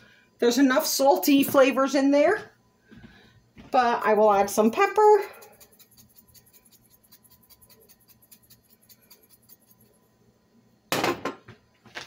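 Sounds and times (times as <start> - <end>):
hard object set down clatter: 10.9 - 11.6.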